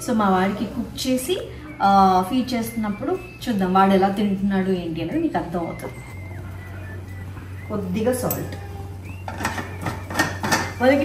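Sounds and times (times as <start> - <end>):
woman talking: 0.0 - 6.2, 7.7 - 8.9, 10.7 - 11.0
background music: 0.0 - 11.0
steady low hum: 0.0 - 11.0
kitchen things clicking and knocking: 9.2 - 11.0.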